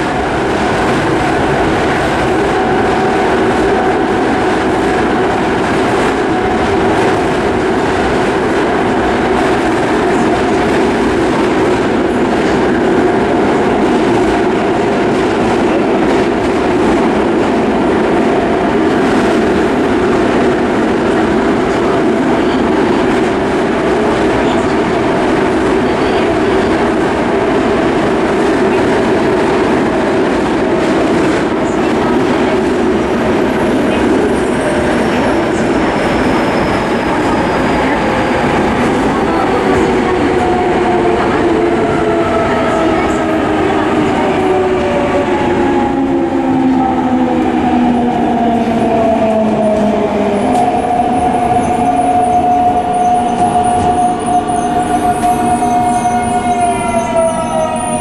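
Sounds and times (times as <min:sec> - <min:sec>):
train rumble inside car: 0:00.0 - 0:58.0.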